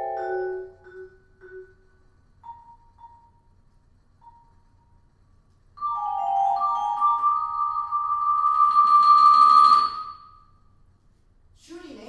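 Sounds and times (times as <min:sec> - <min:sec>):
high vibraphone note: 0:00.0 - 0:01.8.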